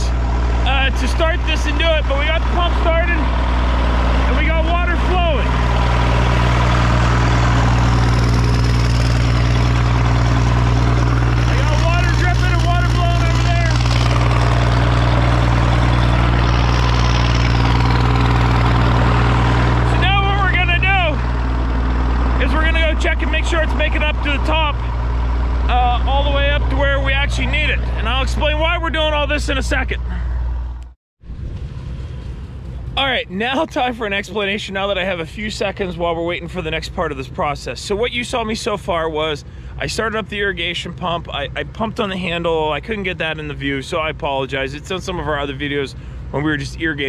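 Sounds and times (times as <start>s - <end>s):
pump engine humming: 0.0s - 28.0s.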